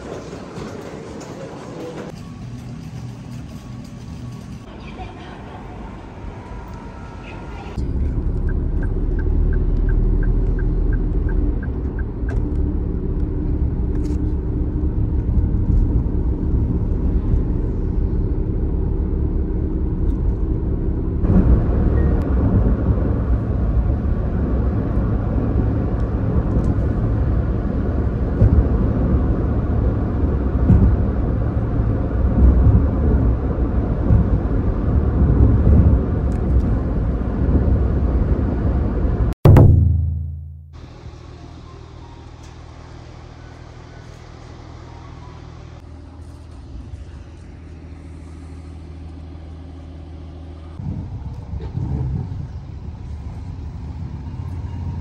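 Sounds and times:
car engine and tyre rumble: 2.0 - 39.6, 40.8 - 55.0.

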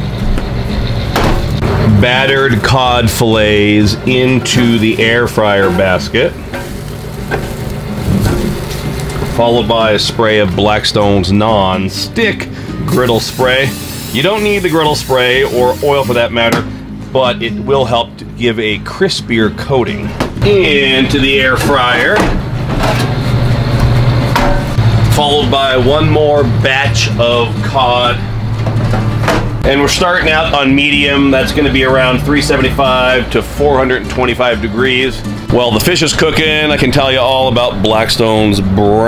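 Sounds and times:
background music: 0.0 - 22.8, 23.4 - 39.0
low hum: 20.0 - 29.8
metal drawer clunk: 21.6 - 23.2, 28.6 - 29.6.

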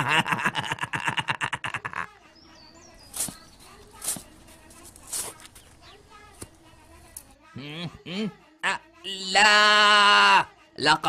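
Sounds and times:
faint high bird chirps: 2.3 - 4.2.

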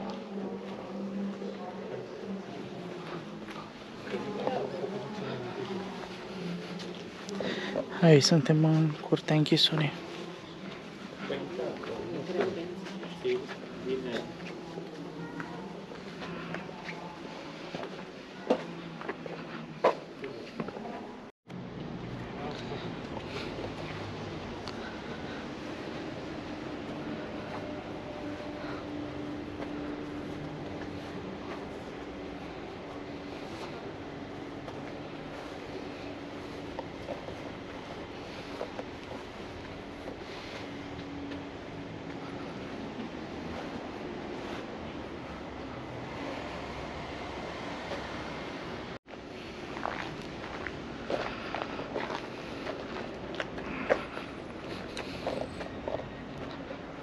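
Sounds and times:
outdoor background noise: 0.0 - 57.0.

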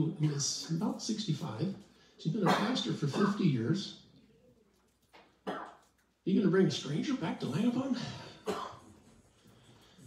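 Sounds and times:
person coughing: 2.4 - 3.6, 8.2 - 8.9.

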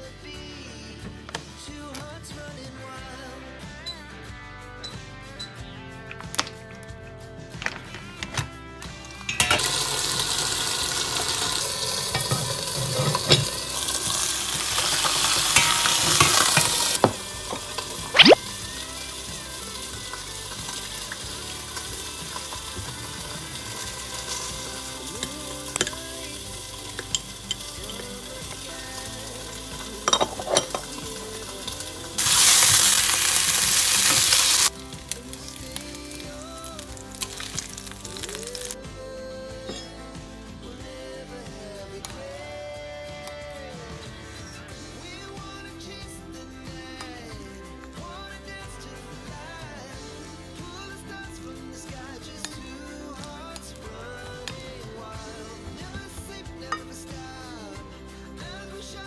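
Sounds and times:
oil sizzling in a frying pan: 9.4 - 38.8
spoon clinking on ceramic bowl: 30.0 - 31.0.

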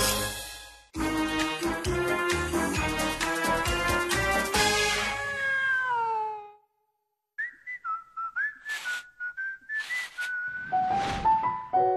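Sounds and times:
music: 0.0 - 5.2, 10.8 - 11.9
whistled jingle: 7.4 - 11.0.

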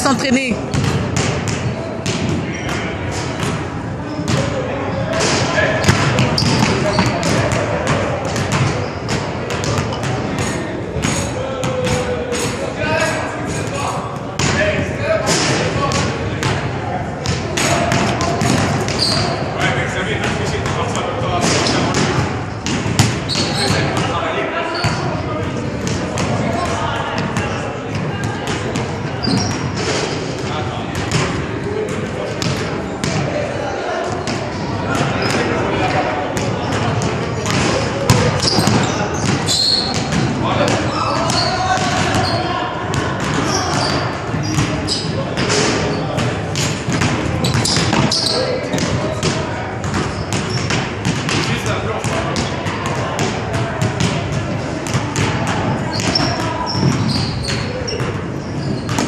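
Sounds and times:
voices in background: 0.0 - 59.0
basketballs bouncing on wooden floor: 0.5 - 5.2, 5.8 - 12.1, 14.2 - 14.6, 15.8 - 24.2, 24.8 - 29.8, 30.4 - 33.3, 34.1 - 59.0.

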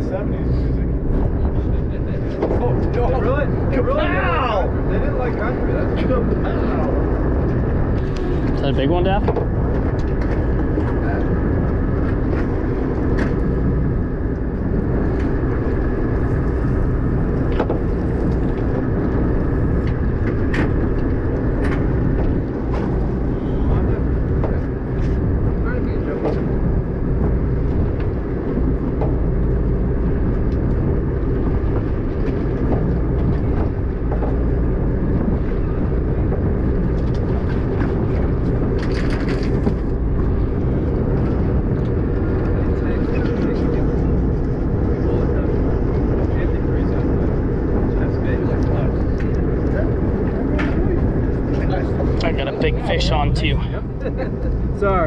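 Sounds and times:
boat engine rumbling: 0.0 - 55.0
water noise: 0.0 - 55.0
wind: 0.0 - 55.0.

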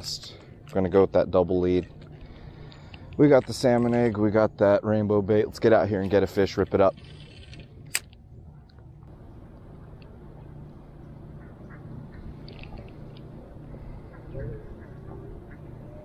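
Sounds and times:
low rumble of handling and wind: 0.0 - 16.0
faint distant calls: 9.2 - 16.0.

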